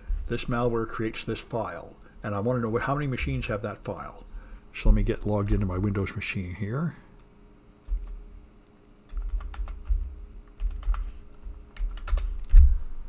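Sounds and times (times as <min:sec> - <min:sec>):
typing on computer keyboard: 0:09.1 - 0:11.1, 0:11.7 - 0:12.5.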